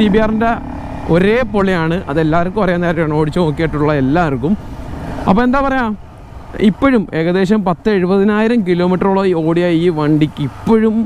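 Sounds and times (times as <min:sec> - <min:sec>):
man talking: 0:00.0 - 0:04.6, 0:05.2 - 0:11.0
motorcycle engine running: 0:00.0 - 0:08.9.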